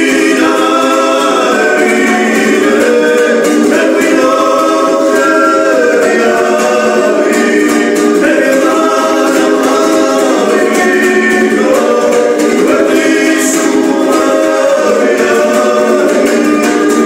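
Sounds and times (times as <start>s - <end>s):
plucked lute strummed: 0.0s - 17.0s
two men singing in harmony: 0.0s - 17.0s.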